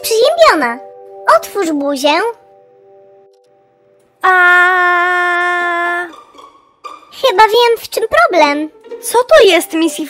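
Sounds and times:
girl holding long aaah: 0:04.2 - 0:06.2.

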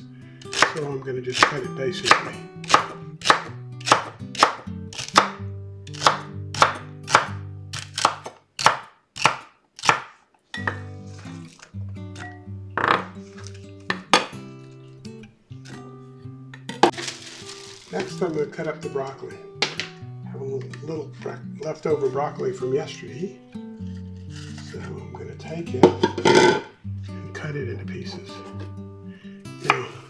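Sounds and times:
knife chopping on wooden board: 0:00.5 - 0:00.8, 0:01.4 - 0:10.8, 0:12.8 - 0:14.4, 0:19.6 - 0:19.9.

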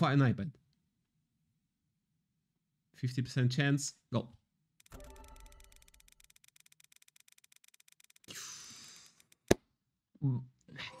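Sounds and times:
faint spinning wheel ticking: 0:05.1 - 0:08.3.

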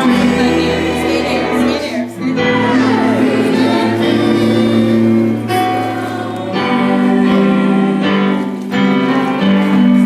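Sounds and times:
choir singing gospel: 0:00.0 - 0:10.0.

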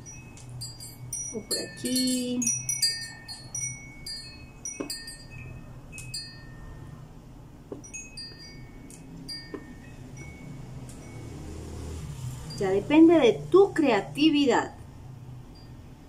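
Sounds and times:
soft bell-like chime tones: 0:00.0 - 0:07.2, 0:07.8 - 0:12.9, 0:15.4 - 0:16.0
low steady hum: 0:00.0 - 0:11.4.

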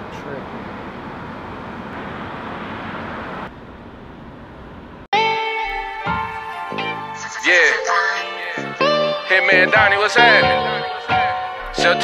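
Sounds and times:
car interior hiss and hum: 0:00.0 - 0:05.1.

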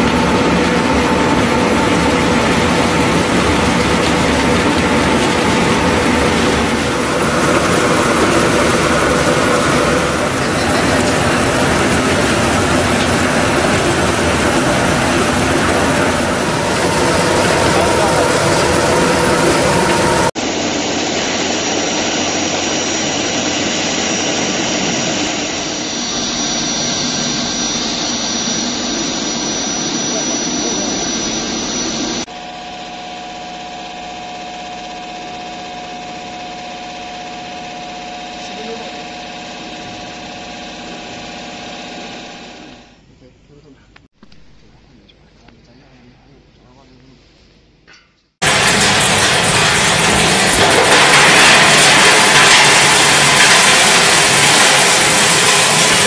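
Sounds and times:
grinder grinding with high whine: 0:00.0 - 0:43.0, 0:48.4 - 0:56.0
peeling machine running loudly: 0:00.0 - 0:43.0, 0:48.4 - 0:56.0.

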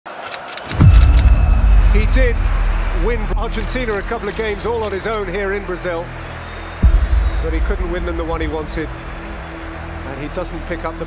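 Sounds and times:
sharp clicks: 0:00.1 - 0:01.4, 0:03.5 - 0:05.2
deep bass drop boom: 0:00.8 - 0:03.8.

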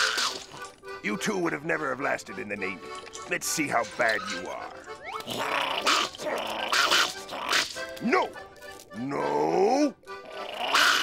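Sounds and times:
cartoon growling and snarling: 0:05.2 - 0:07.8, 0:10.2 - 0:11.0.

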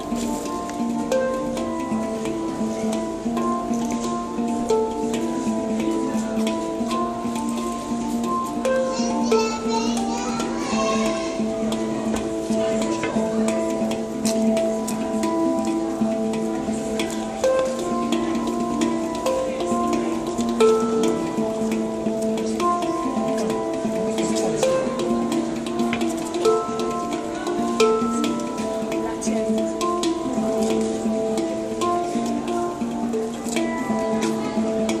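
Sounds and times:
handpan melody: 0:00.0 - 0:35.0
taps on handpan shell: 0:00.0 - 0:35.0.

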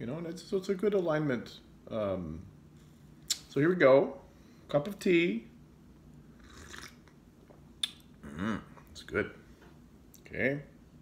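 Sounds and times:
person slurping tea: 0:06.4 - 0:07.1.

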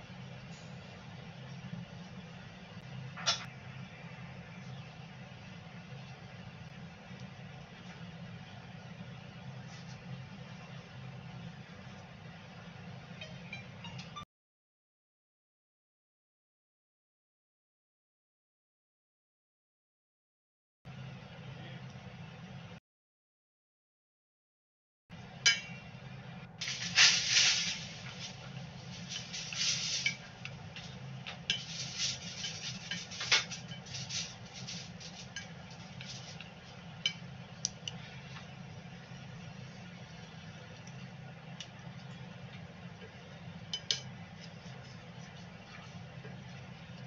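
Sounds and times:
steak sizzling in a pan: 0:26.6 - 0:30.5
chopsticks clinking and scraping pan: 0:26.6 - 0:37.3, 0:43.7 - 0:44.7.

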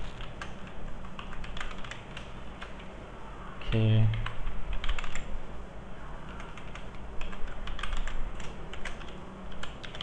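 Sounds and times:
low electrical hum: 0:00.0 - 0:10.0
computer keyboard typing: 0:00.2 - 0:02.8, 0:04.2 - 0:05.3, 0:06.4 - 0:10.0.

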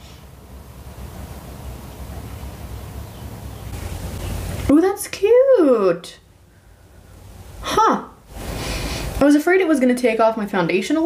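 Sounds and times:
breathy exhale: 0:08.4 - 0:09.2.

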